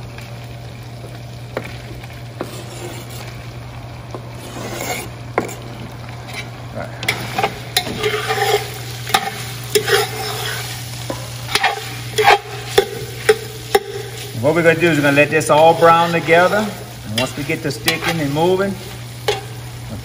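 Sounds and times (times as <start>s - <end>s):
meat sizzling in a pot: 0.0s - 20.0s
metal spoon scraping a pot: 2.4s - 3.4s, 4.4s - 10.8s, 11.5s - 14.2s, 19.2s - 19.6s.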